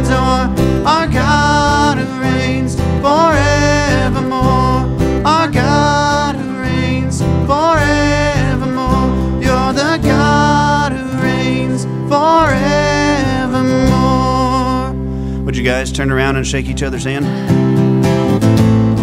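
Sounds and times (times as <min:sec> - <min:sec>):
man singing into a microphone: 0:00.0 - 0:15.0
electric bass: 0:00.0 - 0:19.0
keyboard: 0:00.0 - 0:19.0
strummed acoustic guitar: 0:00.0 - 0:19.0.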